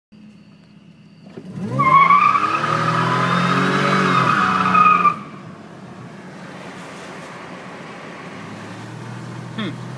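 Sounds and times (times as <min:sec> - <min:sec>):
car engine revving hard: 0:01.4 - 0:05.2.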